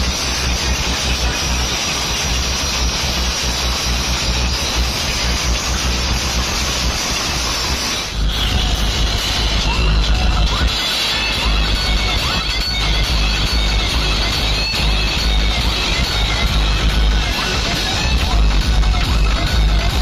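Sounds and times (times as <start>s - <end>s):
loud distorted bass-heavy music: 0.0s - 20.0s.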